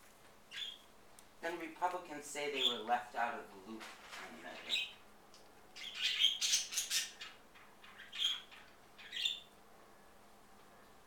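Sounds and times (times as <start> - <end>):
parrot squawking: 5.8 - 9.5.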